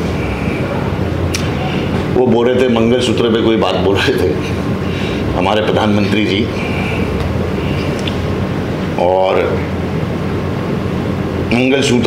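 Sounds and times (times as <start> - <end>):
low room hum and rumble: 0.0 - 12.0.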